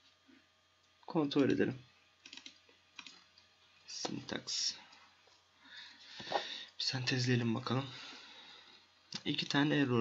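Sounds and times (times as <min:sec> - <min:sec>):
computer mouse clicks: 0:02.2 - 0:03.2.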